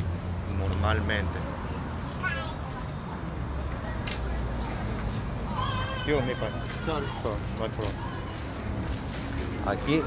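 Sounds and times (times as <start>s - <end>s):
low traffic rumble: 0.0s - 10.0s.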